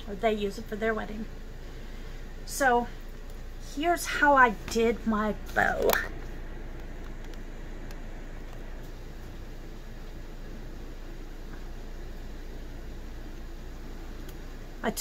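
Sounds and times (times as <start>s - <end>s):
low hum: 0.0s - 15.0s
steady background hiss: 0.0s - 15.0s.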